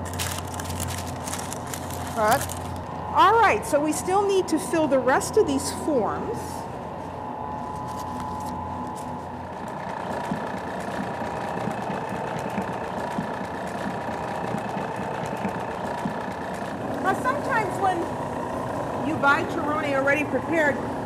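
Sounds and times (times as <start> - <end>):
stand mixer motor hum and whine: 0.0 - 2.0, 2.6 - 21.0.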